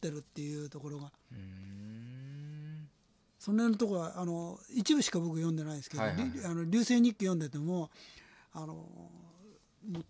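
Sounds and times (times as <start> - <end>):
man humming low: 1.3 - 2.9, 6.0 - 6.4.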